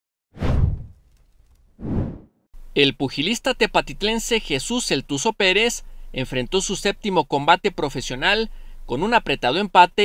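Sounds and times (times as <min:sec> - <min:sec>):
whoosh sound effects: 0:00.4 - 0:01.0, 0:01.8 - 0:02.3.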